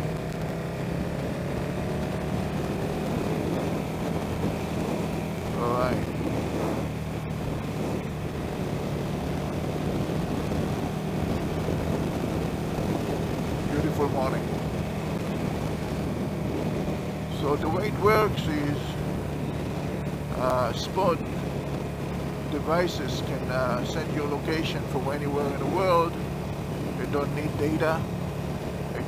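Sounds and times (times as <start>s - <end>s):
motorcycle engine cruising: 0.0s - 29.0s
wind rush on microphone: 0.0s - 29.0s.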